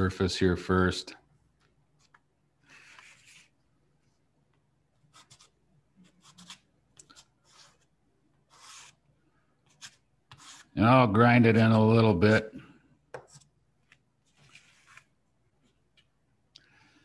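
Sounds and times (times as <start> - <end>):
pastel stick scratching paper: 2.0 - 3.6, 5.1 - 9.0, 9.6 - 10.8.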